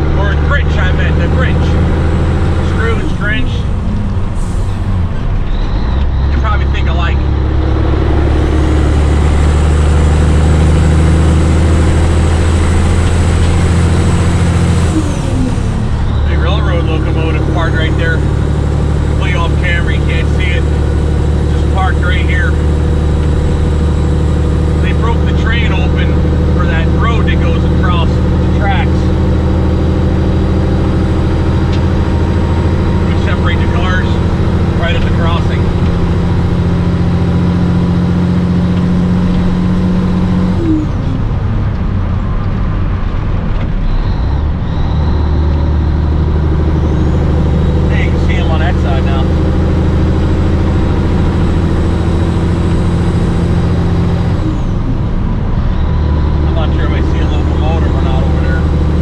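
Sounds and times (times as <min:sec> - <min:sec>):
diesel truck engine drone: 0:00.0 - 0:59.0.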